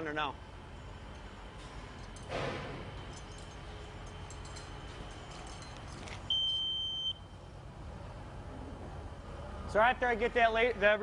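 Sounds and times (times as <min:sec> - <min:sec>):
job-site background noise: 0:00.0 - 0:11.0
high steady beep: 0:06.3 - 0:07.2.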